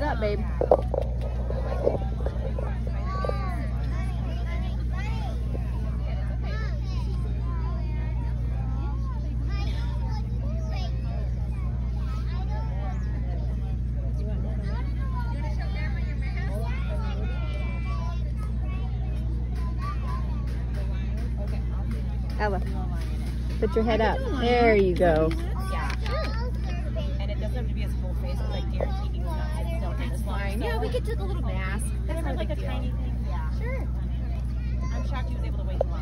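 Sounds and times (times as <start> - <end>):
low hum: 0.0 - 36.0
people talking: 0.0 - 36.0.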